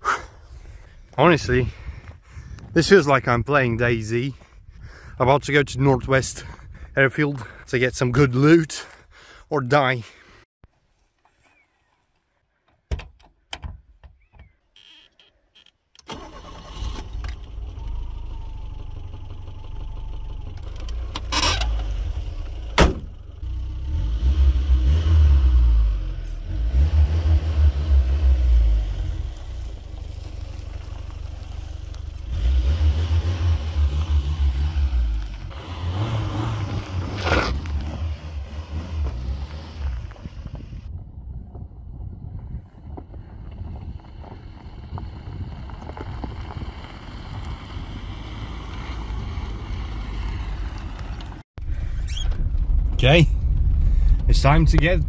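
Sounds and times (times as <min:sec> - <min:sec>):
car engine starting and running: 0:16.0 - 0:40.9, 0:43.9 - 0:55.0.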